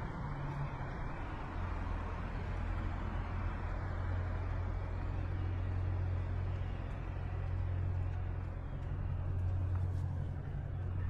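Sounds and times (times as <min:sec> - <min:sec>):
city traffic rumble: 0:00.0 - 0:11.0
constant low hum: 0:00.0 - 0:11.0.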